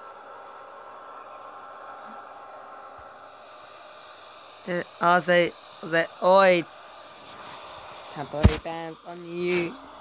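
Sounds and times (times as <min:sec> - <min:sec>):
faint hiss and hum: 0:00.0 - 0:10.0
faint steady tones: 0:00.0 - 0:10.0.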